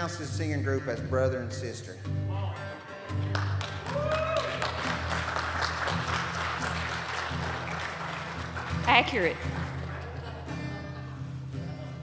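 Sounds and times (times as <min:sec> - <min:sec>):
soft instrumental music: 0:00.0 - 0:12.0
congregation applauding: 0:03.2 - 0:10.6.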